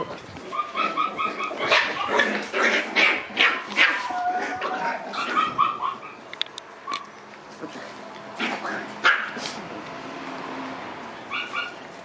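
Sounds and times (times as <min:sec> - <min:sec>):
puppies yipping: 0:00.4 - 0:07.2, 0:11.2 - 0:12.0.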